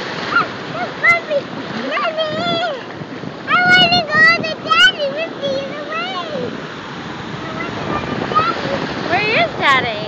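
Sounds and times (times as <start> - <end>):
ocean surf splashing: 0.0 - 10.0.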